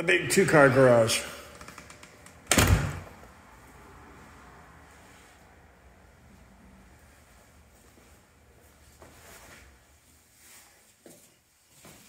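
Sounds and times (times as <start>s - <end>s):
door shutting with a thud: 2.5s - 3.2s.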